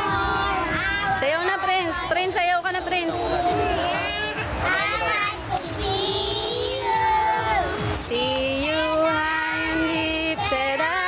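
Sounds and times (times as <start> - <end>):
young children singing: 0.0 - 2.1, 2.8 - 11.0
low steady music beat: 0.0 - 11.0.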